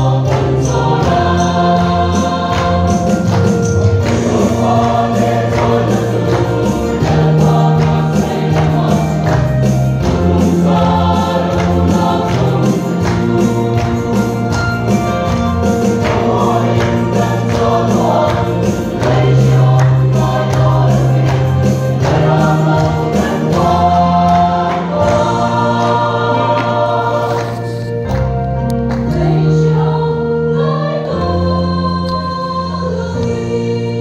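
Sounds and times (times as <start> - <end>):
choir singing gospel music: 0.0 - 34.0.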